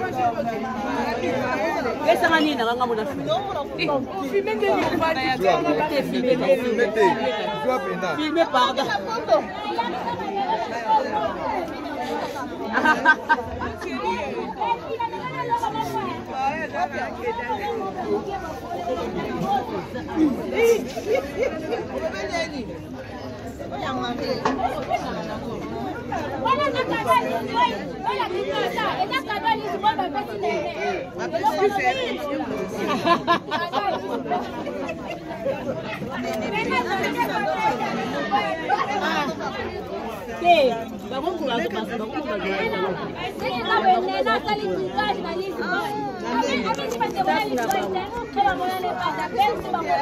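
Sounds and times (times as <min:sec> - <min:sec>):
group chatter: 0:00.0 - 0:50.0.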